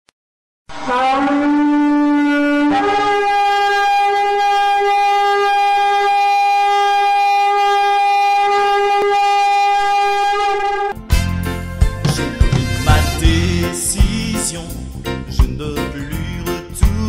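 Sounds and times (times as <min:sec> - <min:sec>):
long horn blast: 0:00.7 - 0:13.9.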